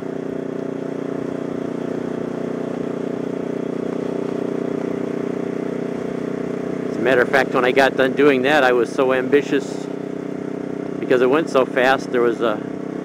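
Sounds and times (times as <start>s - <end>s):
motorcycle engine running: 0.0s - 13.0s
wind and road noise: 0.0s - 13.0s.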